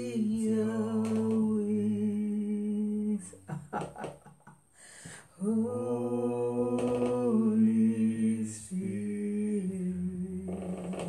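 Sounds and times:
woman singing unaccompanied: 0.0s - 3.5s, 5.4s - 11.0s.

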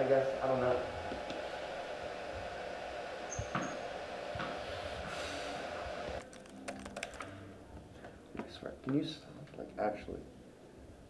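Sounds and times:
room noise hiss: 0.0s - 6.2s
short high squeaks: 3.3s - 3.8s.

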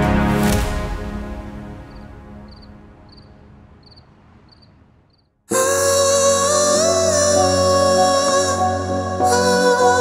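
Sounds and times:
background score music: 0.0s - 4.2s, 5.5s - 10.0s
cricket chirping: 1.9s - 5.3s.

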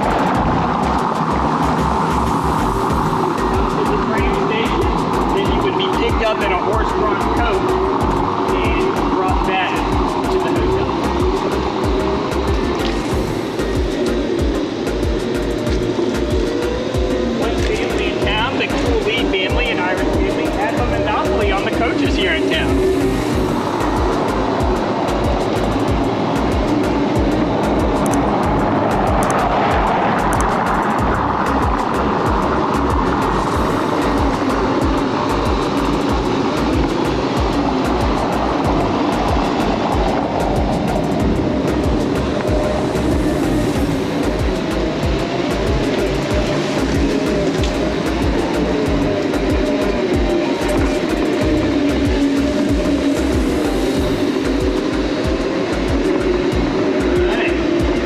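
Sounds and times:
background music: 0.0s - 58.0s
wind buffeting microphone: 0.0s - 58.0s.

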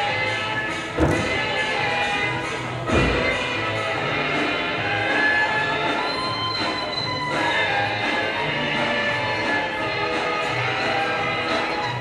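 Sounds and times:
floor exercise music: 0.0s - 12.0s
feet landing with heavy thud: 1.0s - 1.6s.

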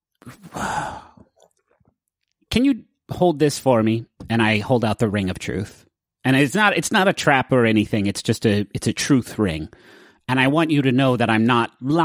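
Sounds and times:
person sighing: 0.3s - 1.4s.

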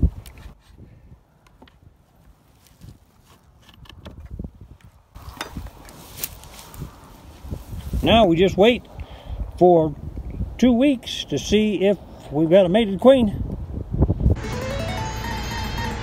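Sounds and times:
rustling of plants: 0.0s - 8.9s.

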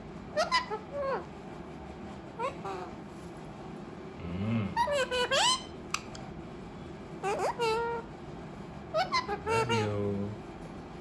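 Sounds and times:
parakeet call: 0.3s - 1.3s, 4.8s - 5.8s, 7.2s - 8.1s, 8.9s - 10.0s.

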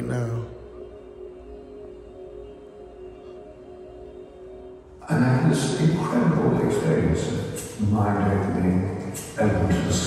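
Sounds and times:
ambient music drone: 0.0s - 10.0s.

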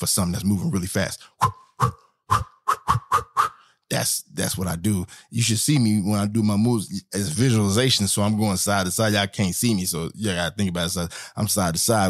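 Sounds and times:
man making mouth sound effects: 1.4s - 3.7s.

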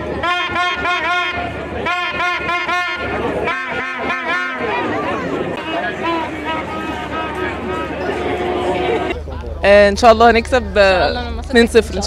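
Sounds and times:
crowd chatter: 0.0s - 12.0s
horn tooting short notes: 0.2s - 9.2s.

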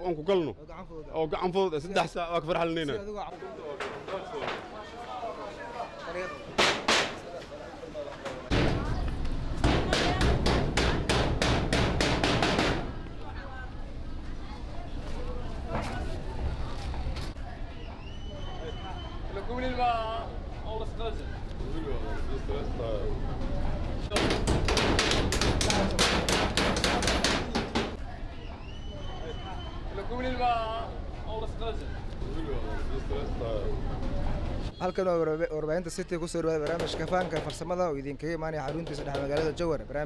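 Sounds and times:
hammering on sheet-metal door: 6.6s - 7.2s, 8.5s - 9.0s, 9.6s - 13.0s, 24.1s - 28.0s, 36.6s - 37.7s, 38.6s - 39.7s.

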